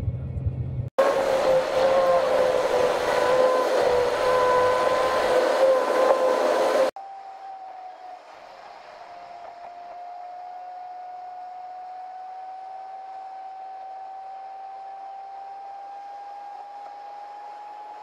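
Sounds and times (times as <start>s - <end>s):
road and wind noise in car: 0.0s - 7.0s
faint tone rising in pitch: 1.0s - 18.0s
sustained steady tone: 1.0s - 18.0s.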